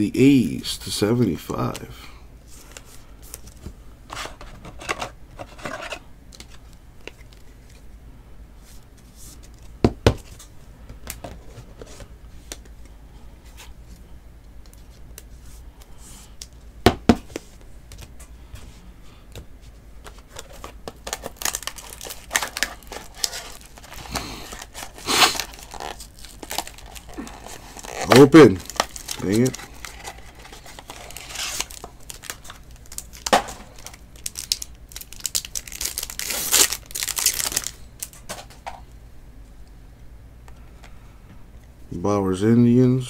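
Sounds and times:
cards rustling: 0:20.0 - 0:38.5
plastic wrapping tearing and crinkling: 0:20.3 - 0:38.3.

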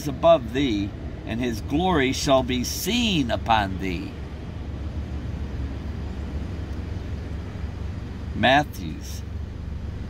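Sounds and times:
vehicle rumble inside cabin: 0:00.0 - 0:10.0.

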